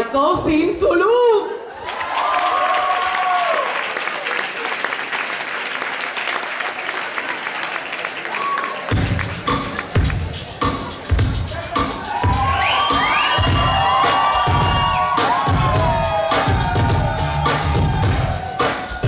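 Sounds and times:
audience applauding: 1.8s - 10.4s, 11.9s - 19.0s
dance music with heavy bass beat: 10.0s - 19.0s.

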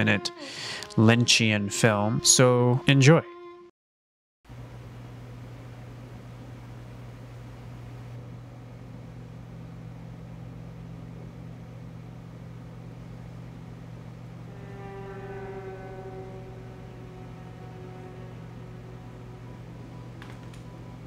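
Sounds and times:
low steady hum: 4.5s - 21.0s
higher tone sinking in pitch: 14.1s - 21.0s.

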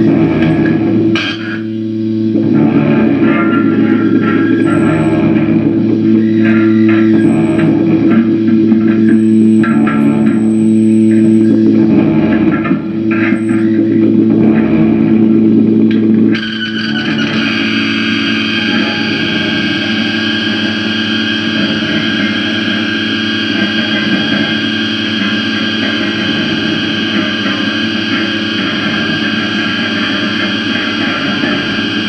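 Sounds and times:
distorted guitar drone: 0.0s - 32.0s.

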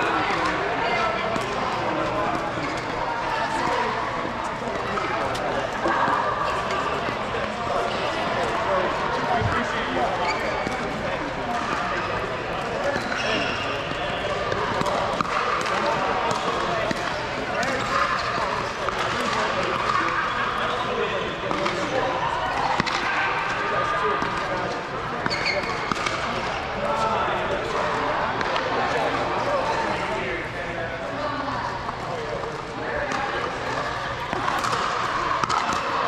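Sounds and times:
chatter of many voices: 0.0s - 36.0s.

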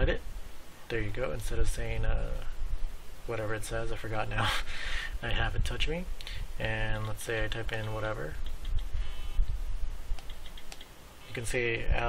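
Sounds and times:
phone keypad taps: 10.2s - 10.9s.

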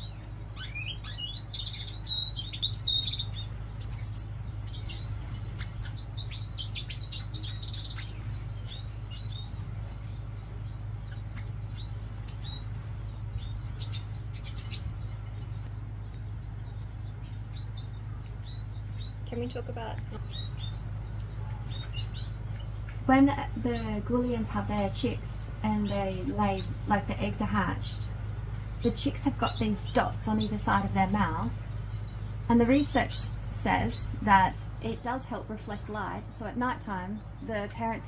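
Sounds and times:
small birds chirping: 0.0s - 38.0s
steady low hum: 0.0s - 38.0s.

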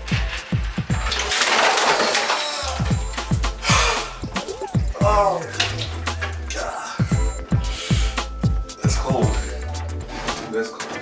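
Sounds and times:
background music with steady beat: 0.0s - 1.6s, 2.7s - 11.0s
ice water splashing: 0.4s - 4.2s.

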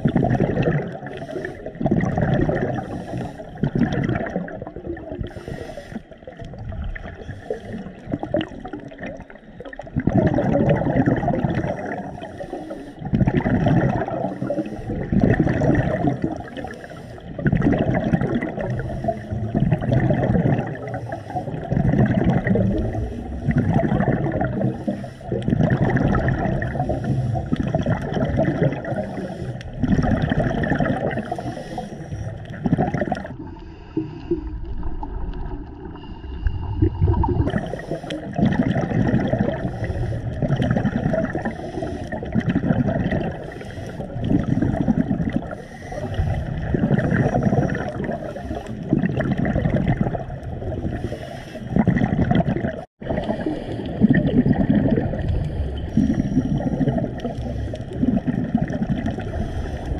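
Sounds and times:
diver breathing bubbles underwater: 0.0s - 59.9s.

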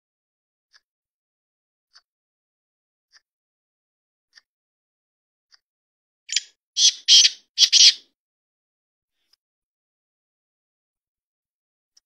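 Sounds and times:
bird calling harshly: 6.3s - 8.0s.

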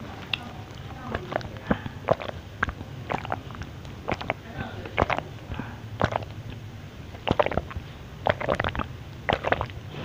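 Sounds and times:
wet swallowing gulps: 0.2s - 10.0s
sipping through a straw: 1.1s - 6.6s, 7.2s - 9.8s.

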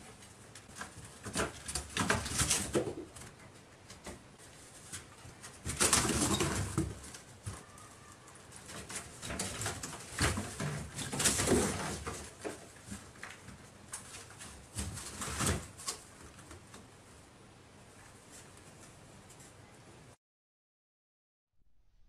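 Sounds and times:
cats scrambling in cardboard boxes: 0.0s - 16.7s.

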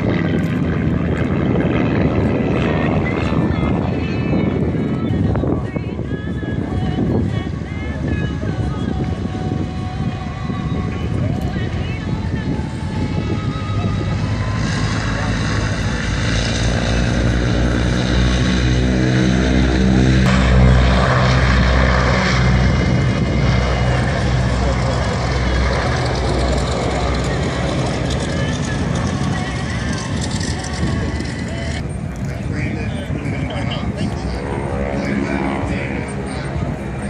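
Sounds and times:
propeller airplane engine passing: 0.0s - 37.0s
people talking: 23.5s - 37.0s.

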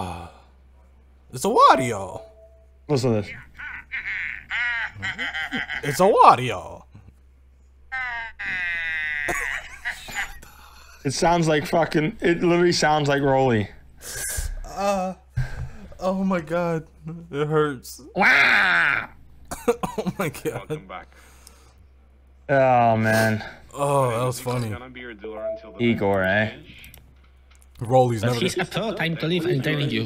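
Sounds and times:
man laughing strained: 3.5s - 6.2s, 8.0s - 11.0s
man making squeaky vocal sounds: 8.0s - 10.4s.

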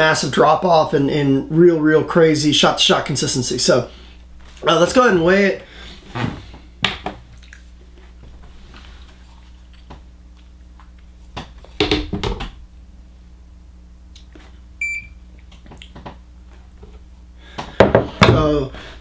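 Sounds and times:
faint low hum: 0.0s - 19.0s
short electronic beep: 14.8s - 15.2s.

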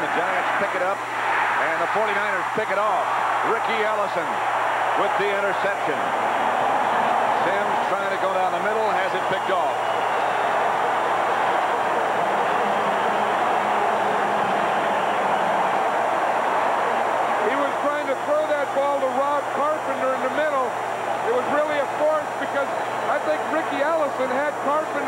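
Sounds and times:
stadium crowd cheering: 0.0s - 25.0s
man's voice: 17.4s - 20.7s, 21.3s - 25.0s.

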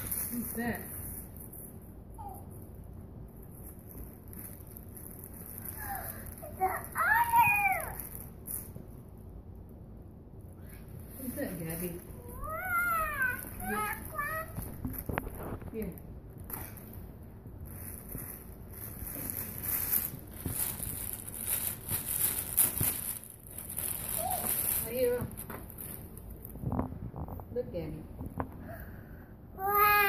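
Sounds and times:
cellophane crinkling: 3.4s - 8.8s, 17.6s - 27.2s.

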